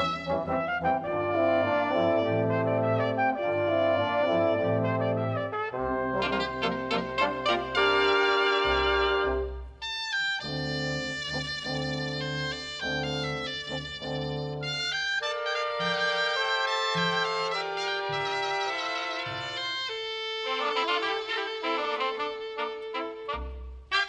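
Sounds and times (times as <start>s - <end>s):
double-reed melody: 0.0s - 9.6s, 10.4s - 24.0s
folk wind band playing: 0.0s - 24.0s.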